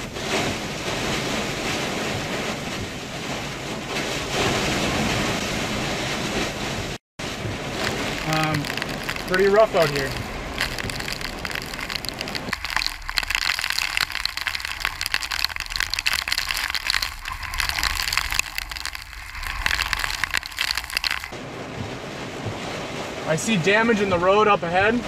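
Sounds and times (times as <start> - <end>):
rain pelting car roof: 0.0 - 25.0.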